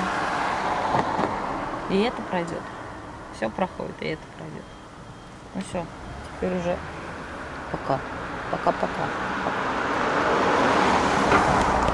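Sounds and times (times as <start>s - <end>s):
car driving past: 6.8s - 11.9s.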